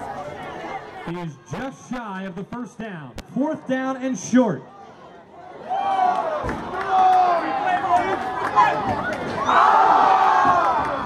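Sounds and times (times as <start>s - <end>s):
stadium crowd shouting: 4.8s - 11.0s.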